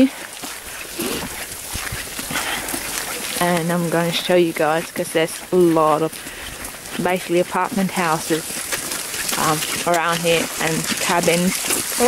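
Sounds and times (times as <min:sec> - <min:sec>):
footsteps on slushy snow: 0:00.0 - 0:12.0.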